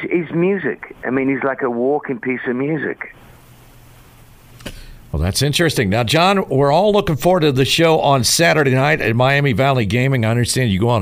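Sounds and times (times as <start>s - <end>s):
brief click: 4.6s - 4.8s.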